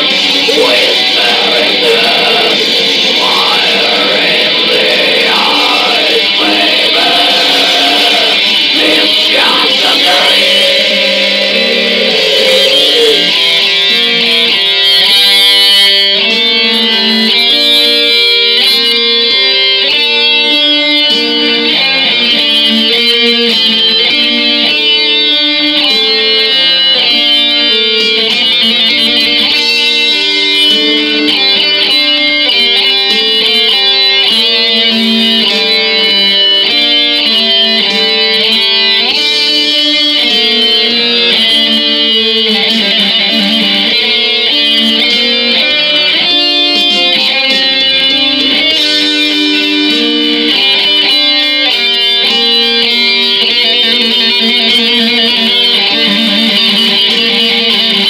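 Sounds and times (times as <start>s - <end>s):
electric guitar music: 0.0s - 58.0s.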